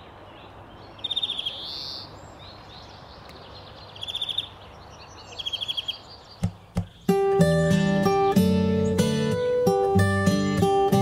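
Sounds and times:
small bird calling: 0:00.0 - 0:11.0
steady outdoor hiss: 0:00.0 - 0:11.0
soft thumps: 0:06.4 - 0:07.0.

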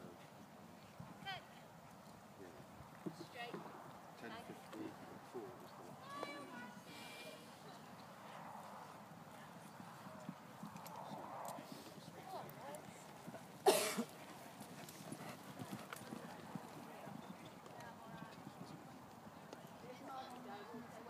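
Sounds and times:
hoofbeats cantering on sand: 0:00.1 - 0:21.0.

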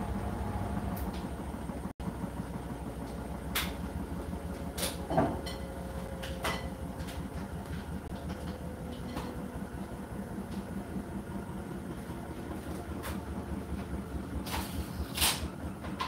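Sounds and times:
washing machine drum churning: 0:00.0 - 0:16.0.

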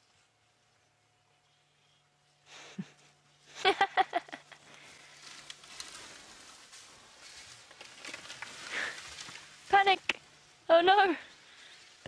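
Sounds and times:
elephants trampling through bush: 0:04.8 - 0:10.6.

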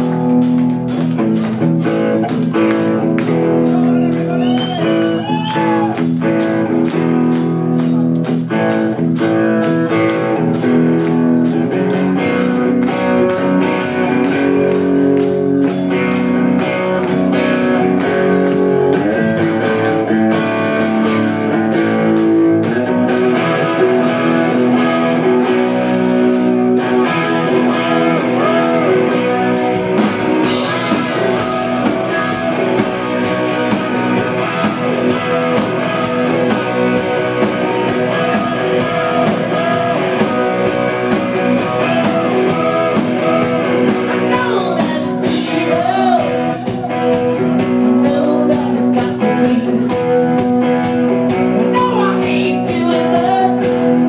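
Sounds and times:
bending guitar notes: 0:00.0 - 0:48.9
electric guitar chords: 0:00.0 - 0:54.0
steady drum beat: 0:00.0 - 0:54.0.

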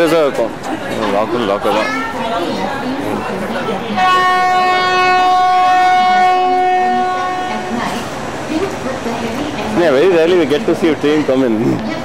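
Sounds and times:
train horn blast: 0:03.9 - 0:08.1.

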